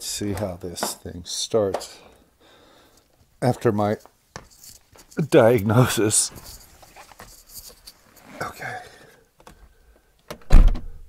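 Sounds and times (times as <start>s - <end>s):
faint shuffling: 0.0s - 10.1s.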